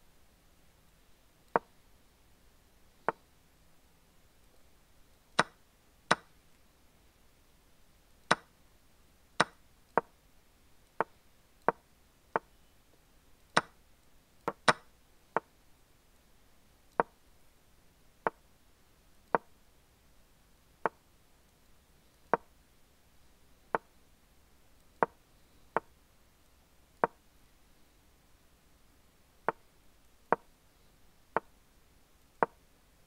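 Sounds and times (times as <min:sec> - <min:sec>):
wooden chess move clicks: 0:05.4 - 0:06.3, 0:08.3 - 0:08.5, 0:09.4 - 0:10.1, 0:13.5 - 0:13.8, 0:14.4 - 0:15.5, 0:32.3 - 0:32.6.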